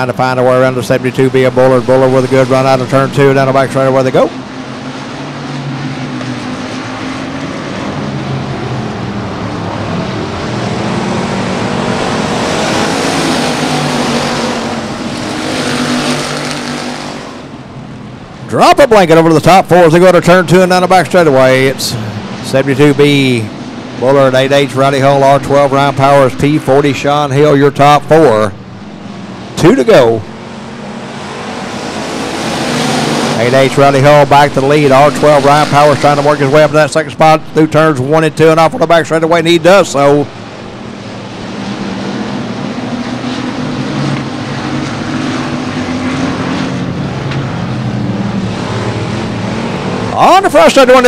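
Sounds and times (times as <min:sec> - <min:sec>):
race car engines at speed: 0:00.0 - 0:51.0.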